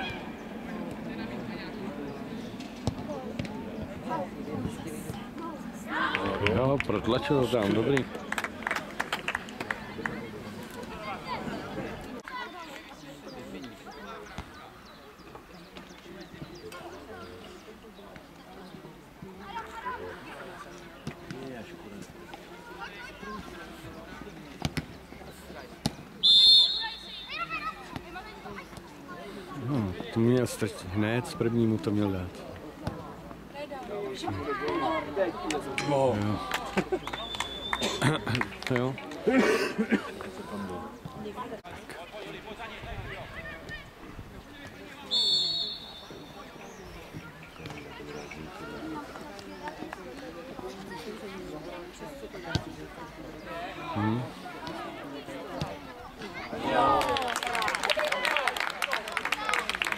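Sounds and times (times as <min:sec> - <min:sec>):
distant shouts and calls: 0:00.0 - 0:00.8, 0:26.2 - 0:28.8, 0:45.0 - 0:48.9
referee's whistle blast: 0:26.2 - 0:27.4, 0:45.1 - 0:46.3
players shouting: 0:56.4 - 0:59.9.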